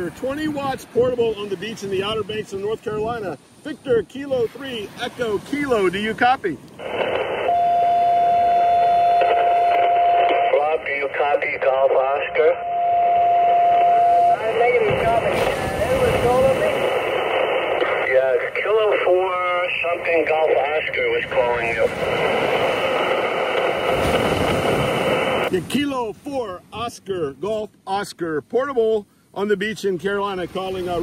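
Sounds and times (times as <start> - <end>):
garbled radio voice: 0.0 - 7.5, 9.2 - 24.1
radio band noise hiss: 0.0 - 7.6, 9.2 - 12.6, 13.8 - 27.4.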